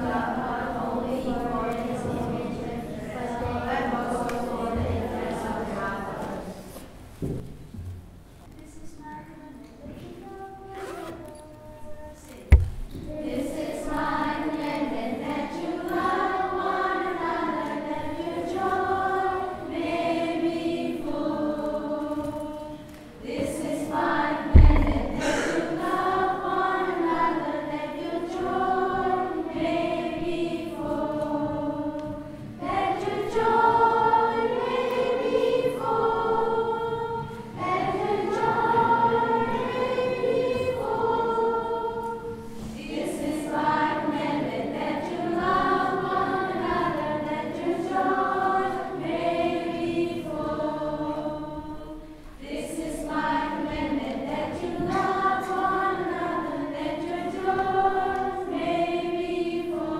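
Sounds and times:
children's choir singing: 0.0s - 7.4s, 9.0s - 59.9s.

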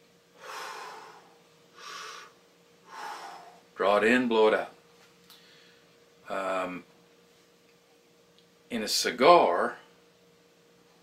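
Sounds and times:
man breathing through lips: 0.4s - 3.6s.

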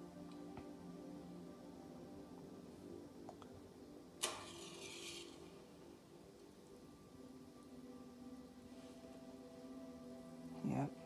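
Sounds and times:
match strike scrape: 4.2s - 5.4s
match flame hissing: 4.3s - 5.4s.

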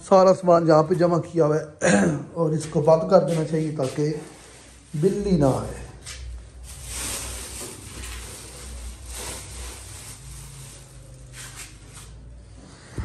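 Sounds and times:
rustling handling noises: 2.6s - 12.4s.

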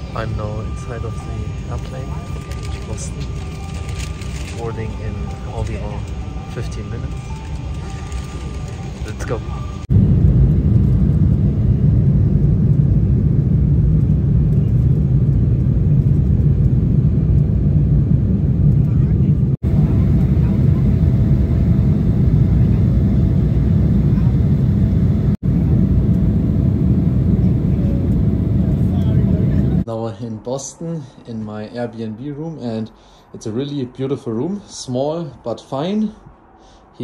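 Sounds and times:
jet engines rumbling: 0.0s - 37.0s.

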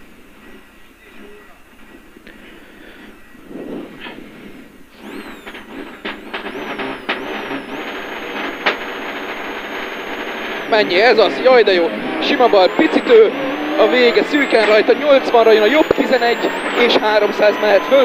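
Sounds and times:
engine crackles: 3.0s - 18.0s
rally car engine revving: 5.0s - 18.0s.

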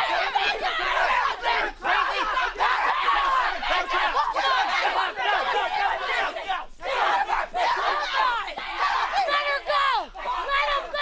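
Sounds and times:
people shouting and yelling: 0.0s - 11.0s.

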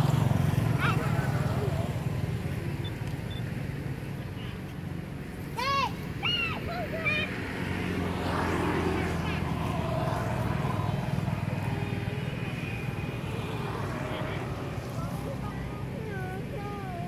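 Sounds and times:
faint indistinct voices: 8.6s - 17.0s.

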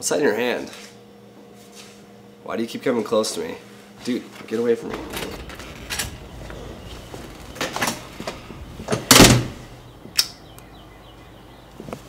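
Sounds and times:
loud noisy burst: 4.8s - 9.8s.

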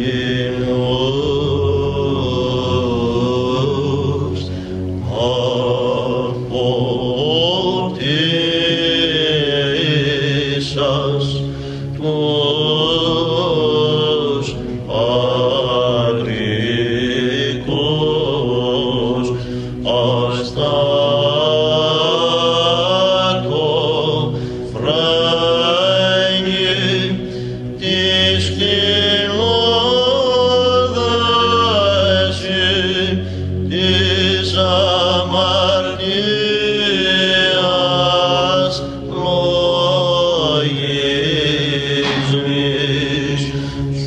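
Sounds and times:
low held vocal drone: 0.0s - 44.0s.

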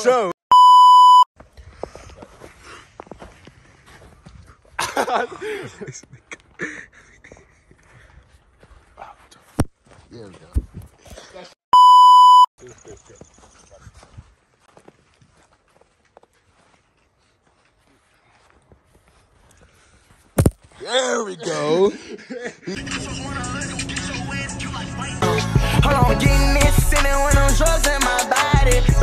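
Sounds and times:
censor bleep tone: 0.5s - 1.3s, 11.8s - 12.5s.

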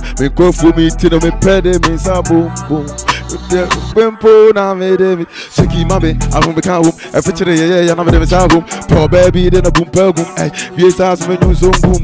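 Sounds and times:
drill beat with deep bass: 0.0s - 12.0s
person rapping: 0.0s - 12.0s
hi-hat ticks: 2.9s - 3.9s.

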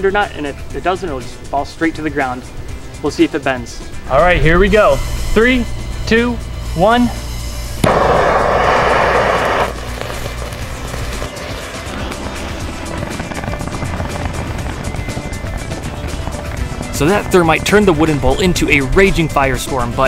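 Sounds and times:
background music: 0.0s - 20.0s
thermite burning with loud hiss: 7.8s - 18.2s.

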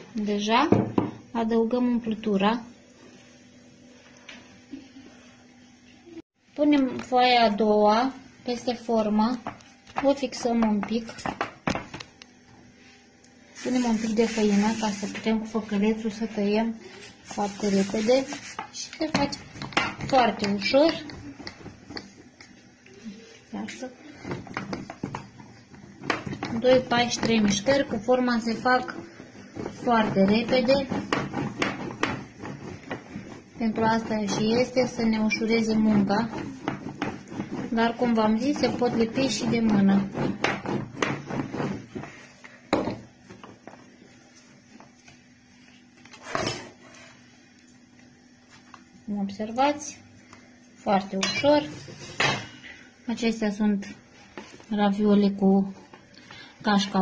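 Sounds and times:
rolling pin rolling over dough: 13.6s - 16.3s, 17.0s - 22.7s, 23.6s - 48.8s.

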